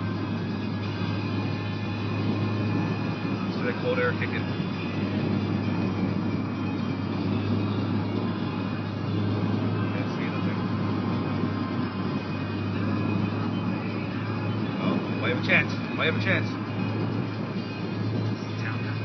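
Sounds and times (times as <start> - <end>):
car engine and road hum: 0.0 - 19.0
climate fan blowing air: 0.0 - 19.0.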